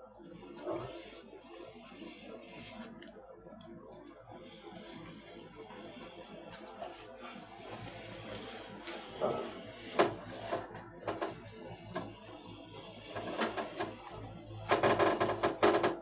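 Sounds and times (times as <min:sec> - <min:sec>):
rasping clicks: 0:08.3 - 0:16.0.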